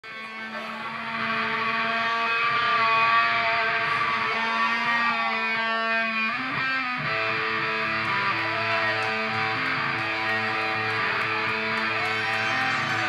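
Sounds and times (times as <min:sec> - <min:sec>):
rock band electric guitar: 0:00.0 - 0:13.0.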